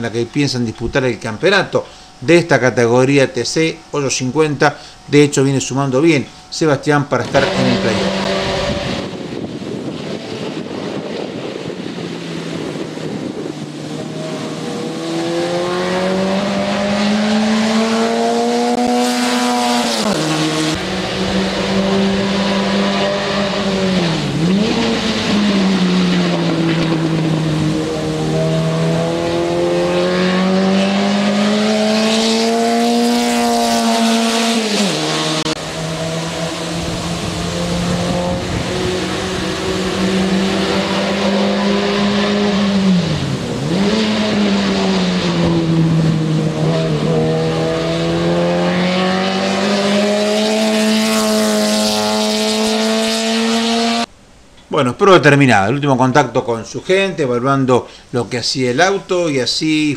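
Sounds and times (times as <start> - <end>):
race car engine revving: 7.2 - 54.1.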